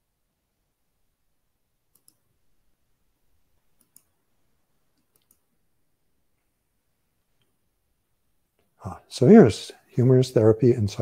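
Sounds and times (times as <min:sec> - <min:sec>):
computer mouse clicks: 0:01.9 - 0:02.3, 0:03.7 - 0:04.2, 0:04.9 - 0:05.5.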